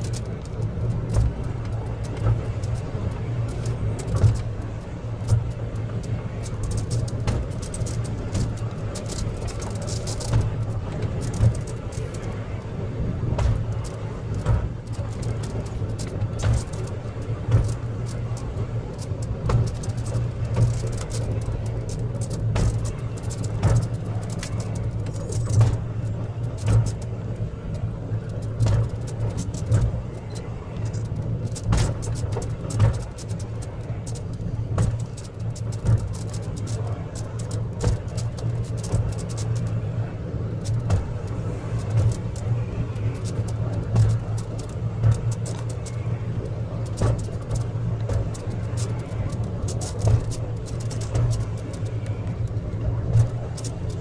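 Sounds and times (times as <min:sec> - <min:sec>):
clicks and knocks of track: 0:00.0 - 0:54.0
funicular car humming on track: 0:00.0 - 0:54.0.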